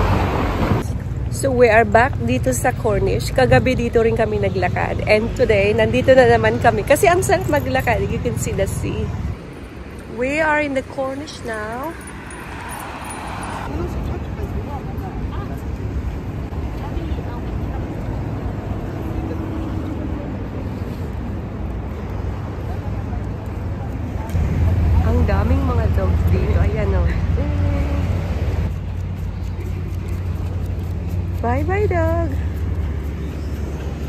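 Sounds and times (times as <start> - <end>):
low traffic rumble: 0.0 - 34.0
vehicle passing by: 0.0 - 34.0.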